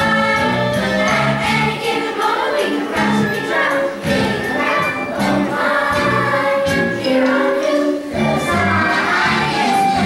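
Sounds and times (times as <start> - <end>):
instrumental accompaniment: 0.0 - 10.0
young voices singing together: 0.0 - 10.0.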